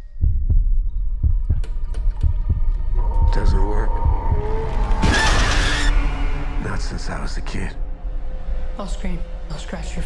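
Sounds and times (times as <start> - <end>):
low heartbeat-like thuds: 0.0 - 5.2.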